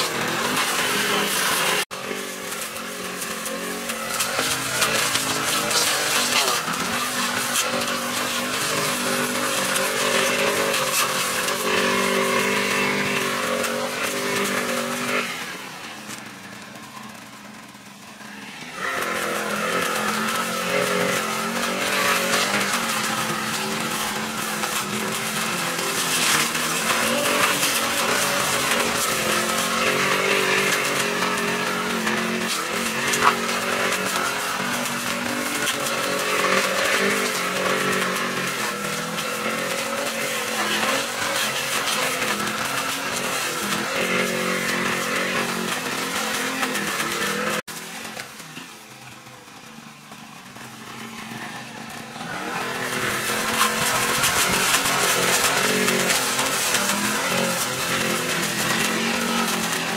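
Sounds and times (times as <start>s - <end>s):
brush cutter engine trimming grass: 0.0s - 59.9s.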